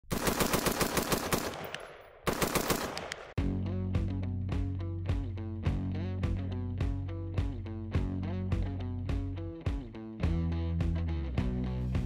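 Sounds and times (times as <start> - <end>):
rapid rifle fire: 0.0 - 3.4
strummed guitar music: 3.4 - 12.0.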